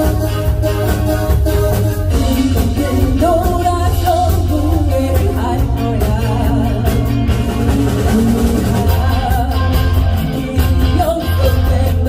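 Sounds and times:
live band playing: 0.0 - 12.0
woman singing with vibrato: 0.0 - 12.0.

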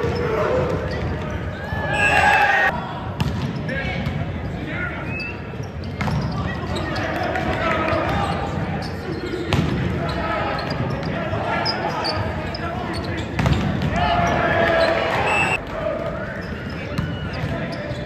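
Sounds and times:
crowd chatter and shouts: 0.0 - 18.0.

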